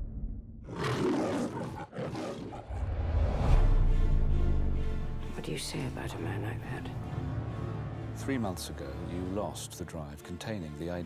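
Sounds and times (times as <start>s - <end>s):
lion roaring: 0.6s - 3.3s.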